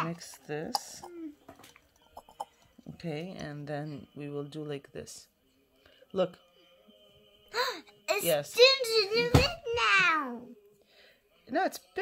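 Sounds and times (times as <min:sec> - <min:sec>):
plastic tubes clicking and tapping: 0:00.2 - 0:02.4.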